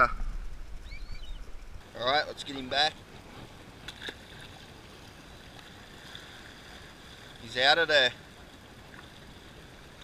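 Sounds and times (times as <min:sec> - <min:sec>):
faint high bird chirp: 0:00.0 - 0:01.6
seawater washing against rocks: 0:01.9 - 0:10.0.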